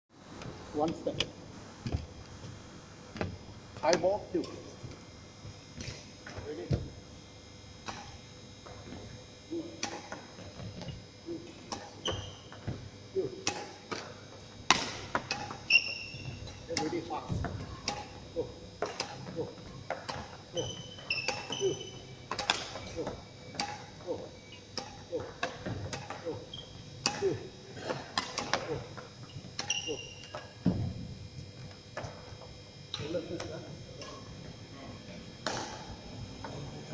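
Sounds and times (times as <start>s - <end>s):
badminton rackets hitting shuttlecocks: 7.8s - 8.3s, 9.8s - 10.2s, 11.7s - 12.7s, 13.4s - 17.0s, 17.8s - 18.2s, 18.8s - 22.9s, 23.5s - 24.0s, 24.7s - 26.2s, 27.0s - 28.8s, 35.4s - 36.0s.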